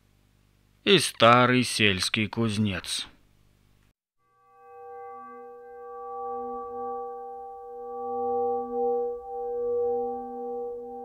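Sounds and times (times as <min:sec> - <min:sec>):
bell-like ringing tone: 0:04.2 - 0:11.0.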